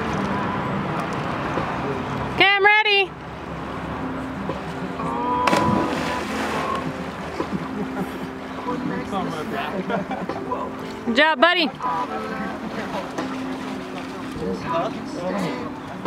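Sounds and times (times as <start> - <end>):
river water rushing: 3.1 - 9.8, 10.4 - 16.0
splash into river: 5.4 - 7.6.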